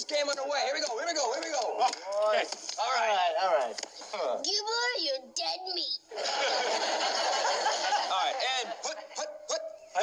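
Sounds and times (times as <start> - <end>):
studio audience laughing: 6.1 - 9.3
excited shouts and yelps: 7.7 - 10.0.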